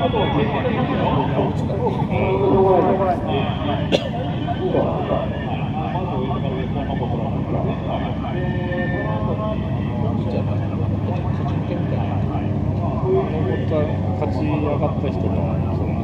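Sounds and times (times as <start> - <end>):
car engines idling: 0.0 - 16.0.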